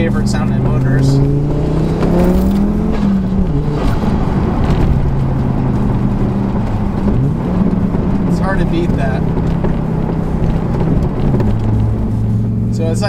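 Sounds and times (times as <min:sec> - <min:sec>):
car engine accelerating: 0:00.0 - 0:13.0.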